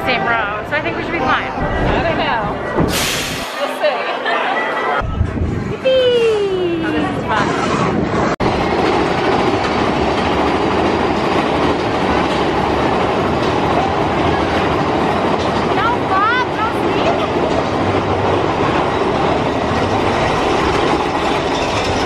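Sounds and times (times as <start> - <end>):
coaster wheels clattering on track: 7.3 - 22.0.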